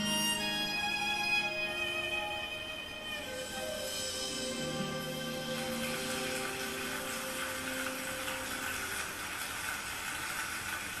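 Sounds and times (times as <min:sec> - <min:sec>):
held musical notes: 0:00.0 - 0:09.4
audience applause: 0:04.9 - 0:11.0.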